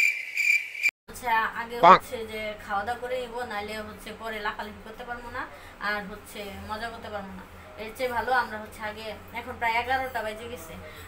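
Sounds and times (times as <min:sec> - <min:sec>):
cricket chirping: 0:00.0 - 0:00.9
woman talking: 0:01.1 - 0:11.0.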